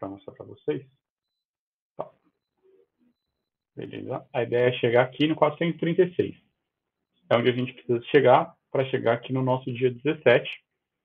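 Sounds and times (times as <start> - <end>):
man speaking a word: 0.0 - 0.9, 3.8 - 6.4.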